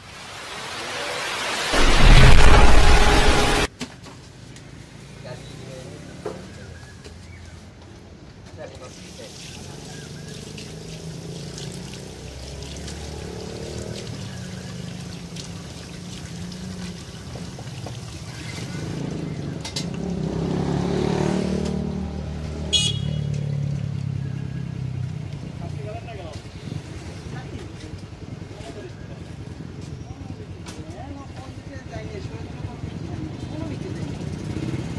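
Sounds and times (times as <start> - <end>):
street traffic: 0.0 - 34.9
vehicle passing loudly: 1.2 - 3.7, 20.0 - 22.7, 34.1 - 34.9.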